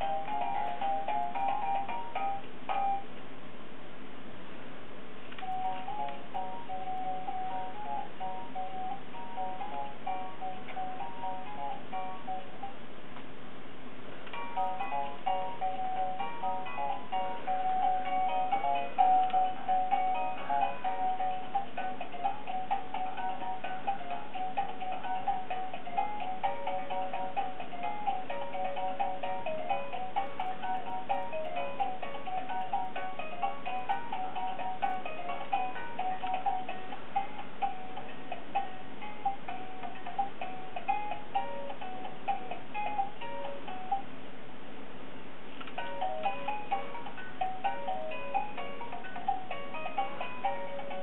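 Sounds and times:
music box tinkling melody: 0.0s - 3.1s, 5.4s - 12.8s, 14.3s - 44.1s, 45.8s - 51.0s.

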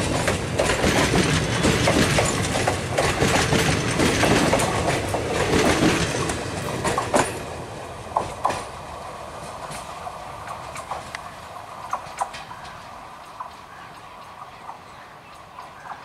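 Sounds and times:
train wheels rumbling and clacking: 0.0s - 16.0s.

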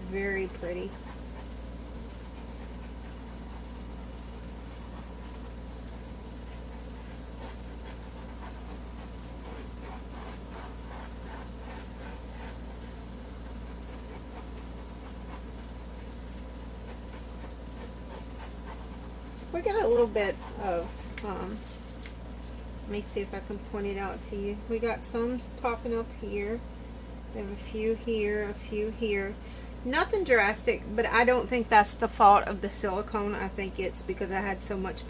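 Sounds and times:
low room hum: 0.0s - 35.0s.

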